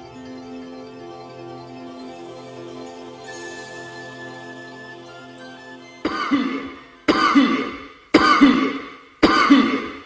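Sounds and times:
sharp countdown hits: 6.0 - 10.0.

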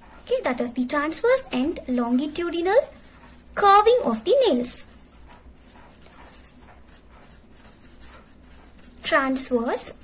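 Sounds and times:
marker writing on paper: 1.0 - 10.0.

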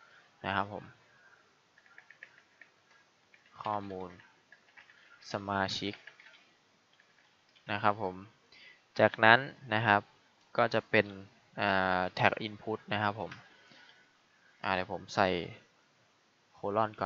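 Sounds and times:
faint keyboard typing: 0.1 - 7.9, 13.0 - 14.6
man speaking: 0.4 - 1.0, 3.6 - 4.2, 5.2 - 6.0, 7.7 - 8.3, 9.0 - 13.4, 14.6 - 15.6, 16.6 - 17.0.

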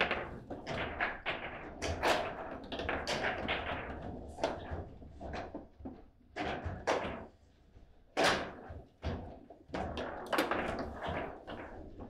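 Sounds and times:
table football knocks and clacks: 0.0 - 12.0.

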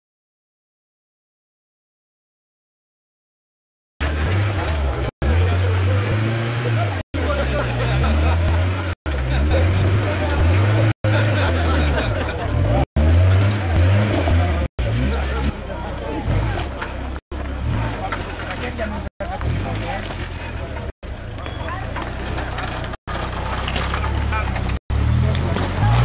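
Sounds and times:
spectators talking: 4.0 - 26.0
truck engine revving: 4.0 - 26.0.

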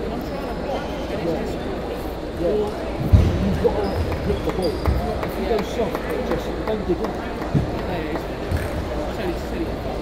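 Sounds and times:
chatter of busy hall: 0.0 - 10.0.

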